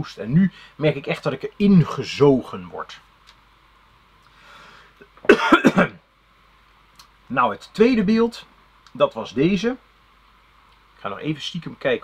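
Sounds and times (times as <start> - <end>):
man coughing: 5.3 - 6.0.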